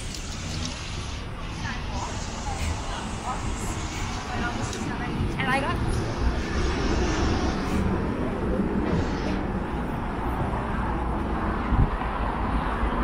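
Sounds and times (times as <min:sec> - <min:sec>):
vehicle traffic rumble: 0:00.0 - 0:13.0
voices of passers-by: 0:00.0 - 0:13.0.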